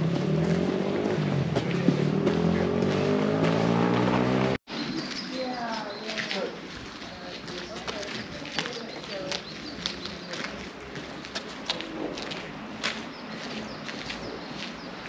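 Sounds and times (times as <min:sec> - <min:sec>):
footsteps walking: 0:00.0 - 0:15.0
people talking indistinctly: 0:04.8 - 0:12.4.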